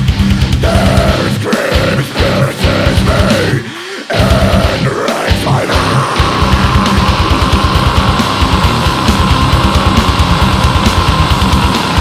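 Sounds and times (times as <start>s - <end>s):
death metal guitars: 0.0s - 12.0s
rapid low drum beat: 0.0s - 12.0s.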